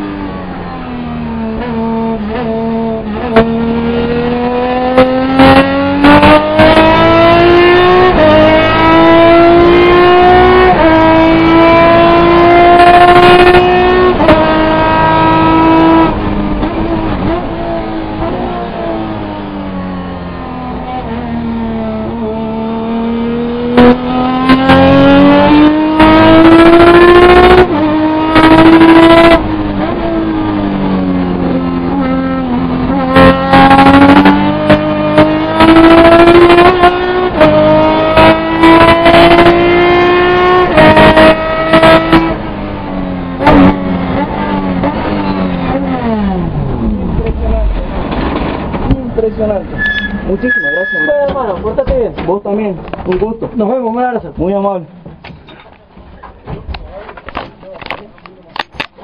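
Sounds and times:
race car engine revving: 0:00.0 - 0:51.8.

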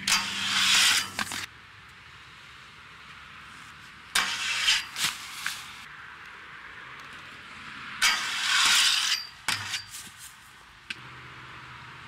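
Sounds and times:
skates grinding metal handrail: 0:00.0 - 0:01.5, 0:04.1 - 0:05.8, 0:08.0 - 0:10.4.

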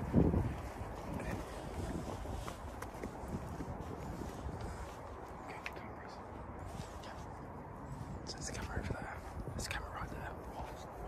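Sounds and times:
faint footsteps on wet path: 0:00.0 - 0:11.0
wind buffeting microphone: 0:00.0 - 0:11.0.

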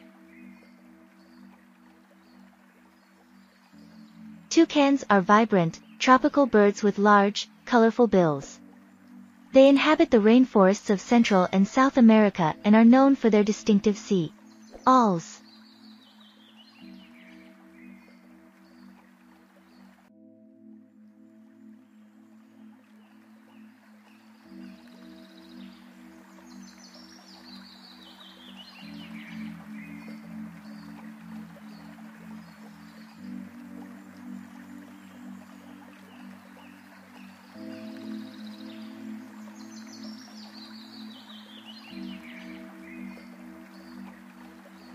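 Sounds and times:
calm ambient music: 0:00.0 - 0:44.9.

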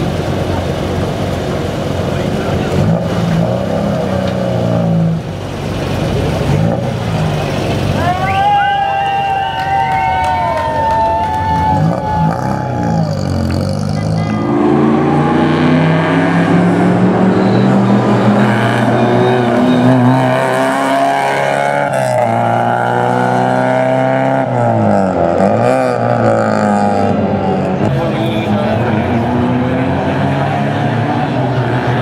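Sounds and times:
car engine revving through gears: 0:11.9 - 0:32.0.

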